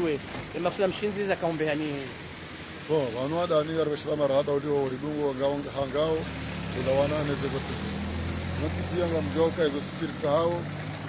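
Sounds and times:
man speaking: 0:00.0 - 0:02.2, 0:02.8 - 0:07.8, 0:08.6 - 0:10.7
vehicle engine humming: 0:00.0 - 0:11.0.

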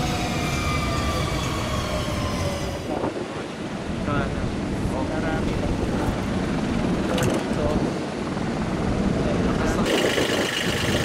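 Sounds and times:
helicopter running: 0:04.5 - 0:11.0.

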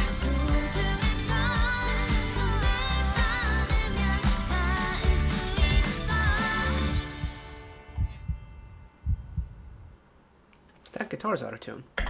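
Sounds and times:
pop song: 0:00.0 - 0:07.7.

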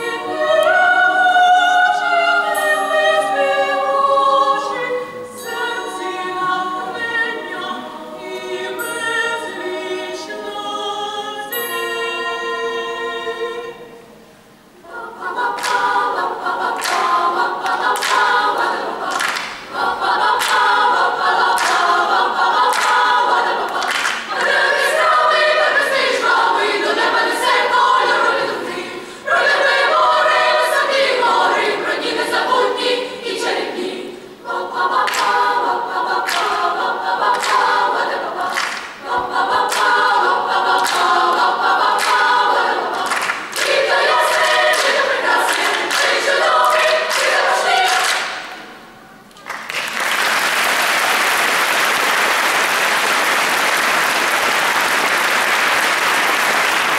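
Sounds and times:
girls' choir singing: 0:00.0 - 0:49.3.

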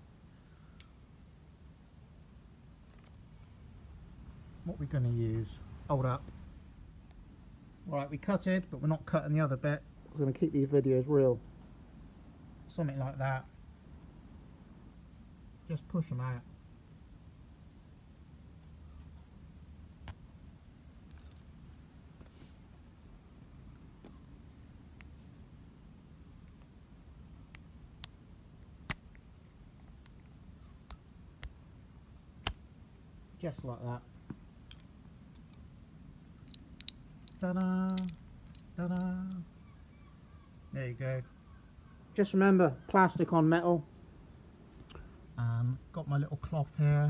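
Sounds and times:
low steady hum: 0:00.0 - 0:47.0
metal tools clicking and tapping: 0:34.7 - 0:35.7, 0:36.4 - 0:39.4.

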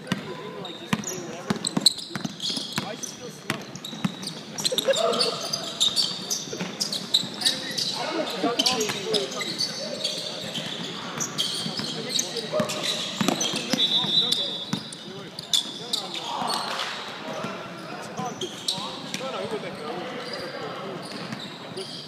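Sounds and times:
shoe squeaks: 0:00.3 - 0:22.0.

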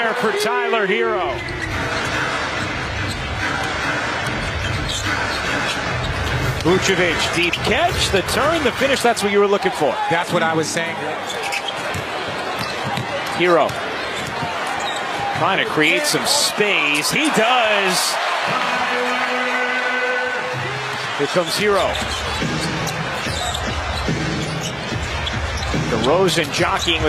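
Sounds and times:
crowd noise: 0:00.0 - 0:27.0.

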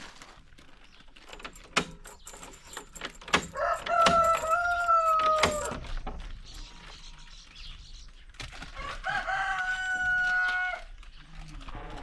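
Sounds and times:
door latch clicking and rattling: 0:01.2 - 0:06.0
rooster crowing: 0:03.5 - 0:05.8, 0:08.8 - 0:10.9.

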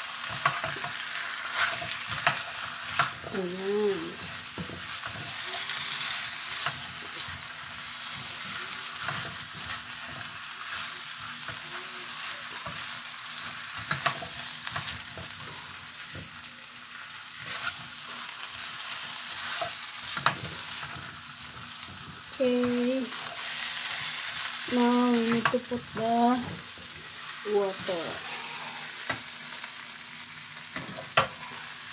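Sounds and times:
food sizzling in a frying pan: 0:00.0 - 0:31.9
spatula scraping a pan: 0:00.1 - 0:03.2, 0:04.0 - 0:16.2, 0:16.9 - 0:29.3.

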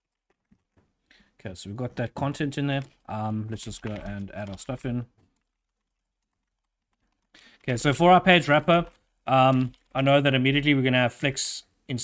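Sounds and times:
computer keyboard typing: 0:02.7 - 0:07.9, 0:08.6 - 0:10.0.

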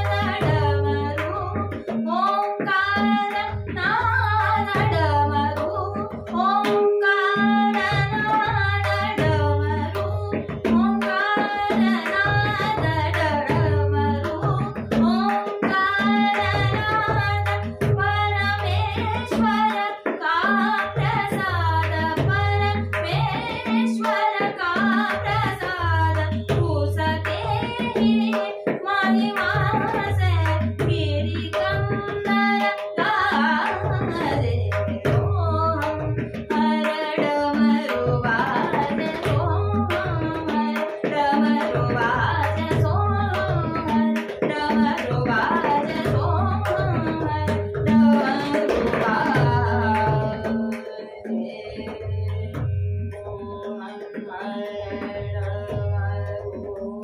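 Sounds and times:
tabla playing: 0:00.0 - 0:57.0.

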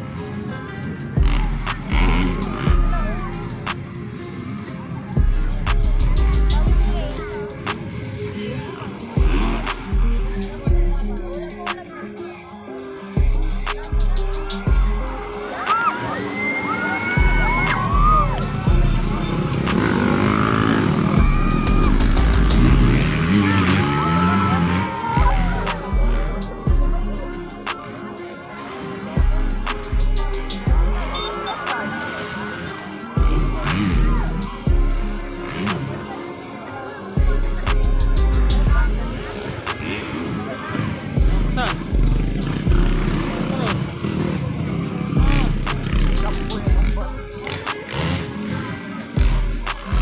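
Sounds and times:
crowd voices: 0:00.0 - 0:50.0
dirt bike engines revving: 0:00.0 - 0:50.0
song playing: 0:00.0 - 0:50.0.

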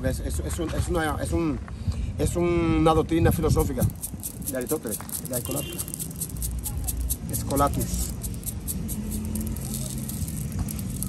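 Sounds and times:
vehicle engine rumbling: 0:03.2 - 0:11.0.

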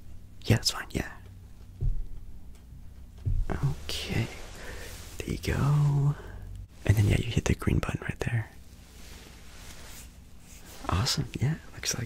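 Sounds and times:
man whispering: 0:00.4 - 0:01.3, 0:03.4 - 0:08.6, 0:10.6 - 0:12.0.

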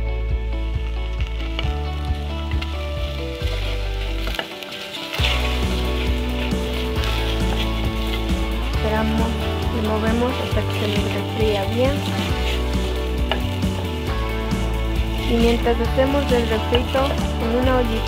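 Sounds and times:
background music: 0:00.0 - 0:18.0
vegetables sizzling in oil: 0:00.5 - 0:18.0
wooden spoon stirring: 0:03.4 - 0:18.0.

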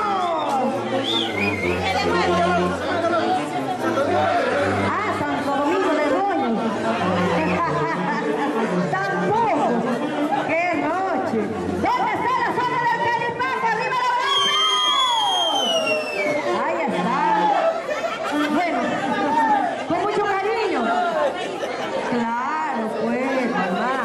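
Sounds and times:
loud crowd chatter: 0:00.0 - 0:24.0
band of saxophones tuba and drums: 0:00.1 - 0:05.5.

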